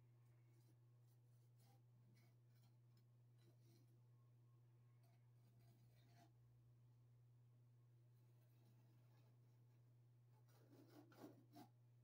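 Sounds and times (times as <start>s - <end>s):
low steady hum: 0.0s - 12.0s
hand tool scraping ceiling tile: 10.4s - 11.8s.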